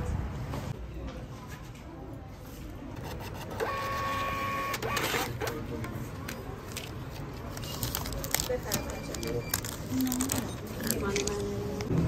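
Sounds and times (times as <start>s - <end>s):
receipt printer whine: 3.0s - 5.5s.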